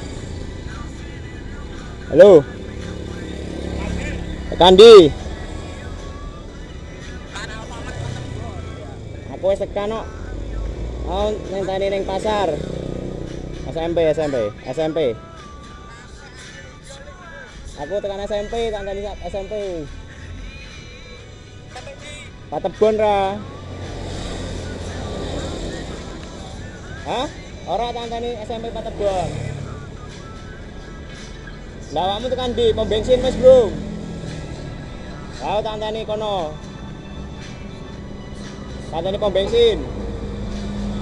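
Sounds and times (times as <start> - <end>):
motorcycle engine: 0.0 - 13.9
motorcycles passing: 0.0 - 41.0
road traffic rumble: 0.0 - 41.0.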